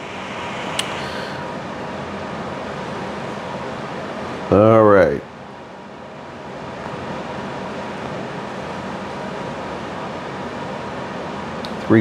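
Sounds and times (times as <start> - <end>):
lighter flame hissing: 0.0 - 1.6.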